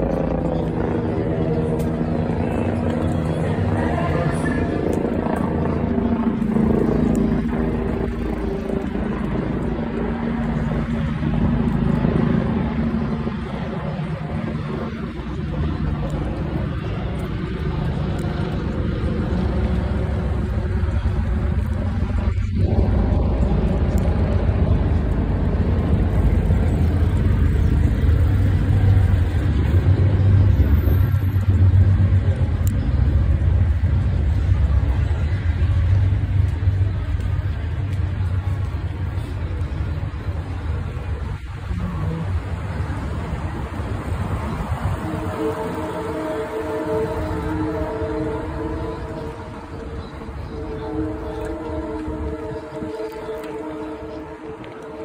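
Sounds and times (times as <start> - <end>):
low rumble of street traffic: 0.0 - 55.0.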